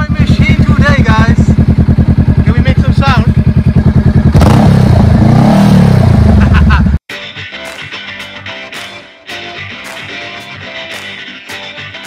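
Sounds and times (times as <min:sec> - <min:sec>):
motorcycle engine revving: 0:00.0 - 0:07.0
rock guitar music: 0:07.1 - 0:12.0.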